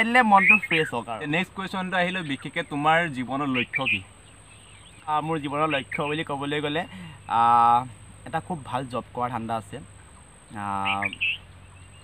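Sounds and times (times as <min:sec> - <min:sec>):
high bird chirps: 0:00.0 - 0:07.8, 0:10.0 - 0:12.0.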